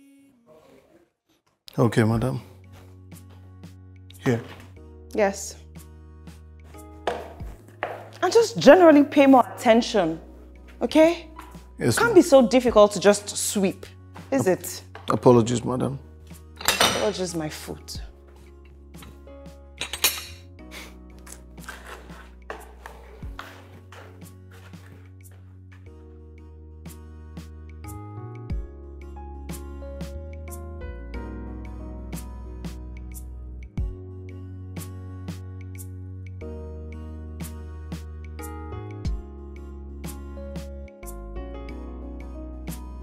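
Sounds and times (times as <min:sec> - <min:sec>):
soft background music: 0:01.7 - 0:43.0
plates and cutlery clinking: 0:16.6 - 0:17.3, 0:19.8 - 0:20.5
broom scraping floor: 0:21.3 - 0:25.8.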